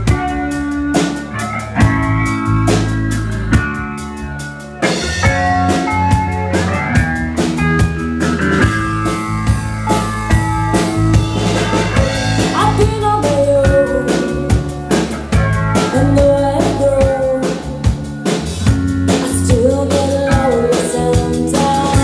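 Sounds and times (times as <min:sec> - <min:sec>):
held bass notes: 0:00.0 - 0:22.0
live funk band playing: 0:00.0 - 0:22.0
steady drum beat: 0:00.0 - 0:22.0.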